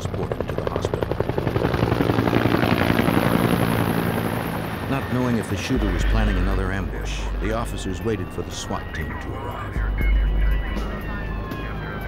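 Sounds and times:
helicopter overhead: 0.0 - 12.0.

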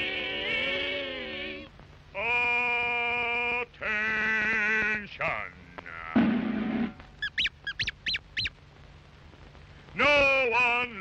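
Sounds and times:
short rough blast: 6.2 - 7.0
short high rising-falling calls: 7.2 - 8.5.

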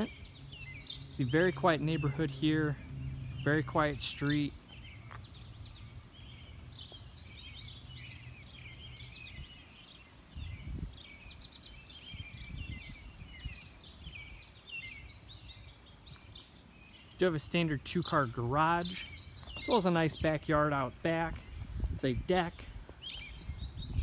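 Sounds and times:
low outdoor rumble: 0.0 - 9.4
songbirds chirping and trilling: 0.0 - 24.0.

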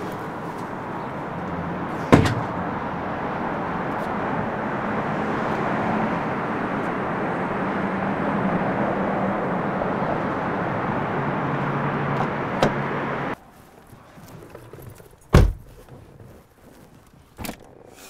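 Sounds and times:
road traffic rumbling hum: 0.0 - 18.0.

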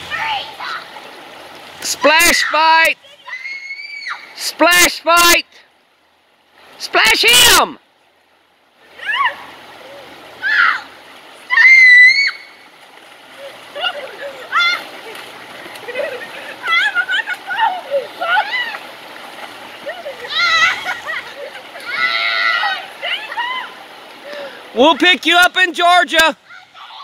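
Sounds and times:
river rapids rushing: 0.0 - 5.6, 6.4 - 7.8, 8.7 - 27.0
water splashing: 0.0 - 27.0
people shrieking and laughing: 13.4 - 19.0, 19.8 - 23.8.

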